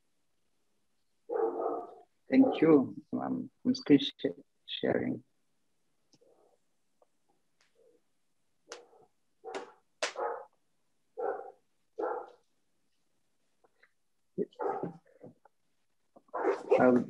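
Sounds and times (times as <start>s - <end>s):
dog barking: 1.3s - 2.7s, 8.8s - 10.6s, 11.2s - 12.4s, 14.4s - 15.0s, 16.3s - 17.0s.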